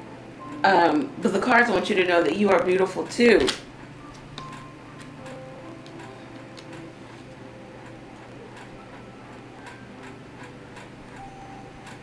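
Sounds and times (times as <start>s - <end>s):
fingernails tapping on cards: 3.4s - 7.4s.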